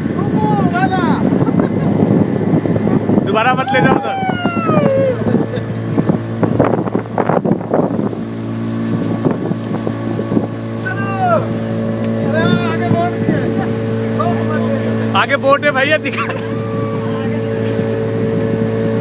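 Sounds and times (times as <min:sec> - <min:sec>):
motorboat engine drone: 0:00.0 - 0:19.0
wind on microphone: 0:00.0 - 0:19.0
voices calling out: 0:03.0 - 0:06.0, 0:10.7 - 0:18.0.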